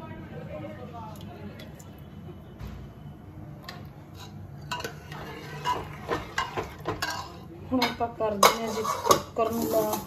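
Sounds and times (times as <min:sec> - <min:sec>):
ladle scraping metal pot: 0:04.0 - 0:10.0.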